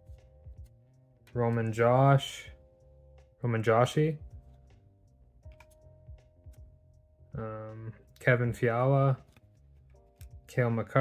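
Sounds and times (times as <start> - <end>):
faint background music: 0.0 - 11.0
soft clicks of cards: 5.4 - 5.9, 9.2 - 10.4.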